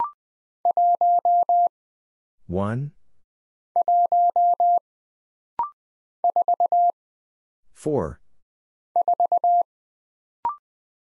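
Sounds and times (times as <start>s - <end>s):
morse code beeps: 0.0s - 1.7s, 3.8s - 4.8s, 5.6s - 6.9s, 9.0s - 9.6s.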